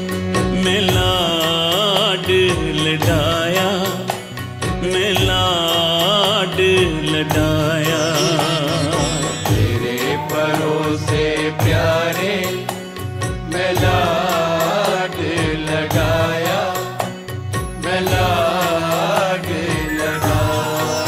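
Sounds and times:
gliding wavering melody: 7.9 - 10.9.

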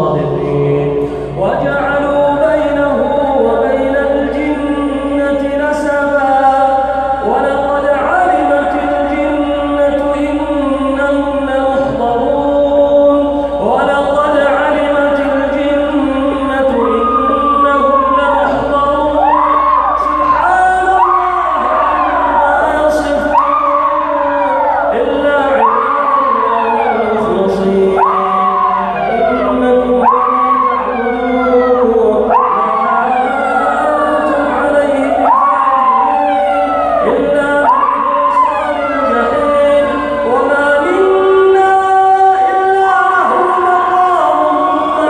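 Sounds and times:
man chanting recitation: 0.0 - 45.0
people wailing: 13.2 - 45.0.

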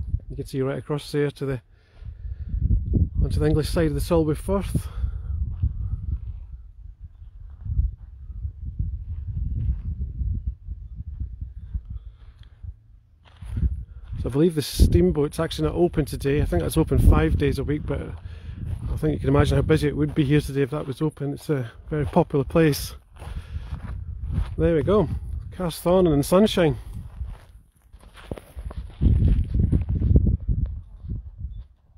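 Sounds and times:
wind noise on microphone: 0.0 - 0.6, 1.8 - 20.6, 21.7 - 31.9
heavy low rumble: 2.1 - 20.8, 21.6 - 26.2
footsteps on gravel: 13.2 - 14.5, 17.8 - 30.0.

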